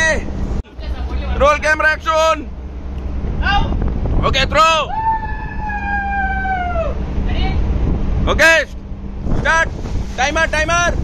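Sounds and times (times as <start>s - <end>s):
wind on microphone: 2.5s - 11.0s.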